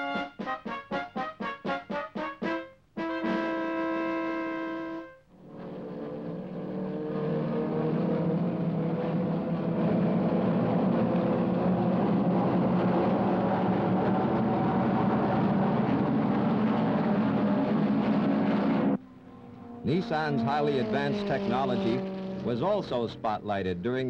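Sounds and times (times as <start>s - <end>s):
race car engines at high revs: 5.4s - 24.0s.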